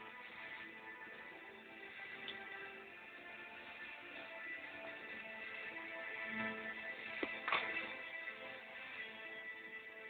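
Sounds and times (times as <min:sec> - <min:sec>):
faint television background music: 0:00.0 - 0:10.0.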